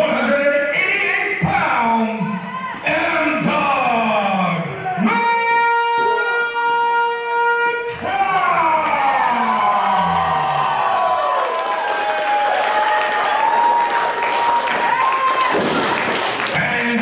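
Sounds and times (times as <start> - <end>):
crowd cheering and applauding: 8.3 - 17.0.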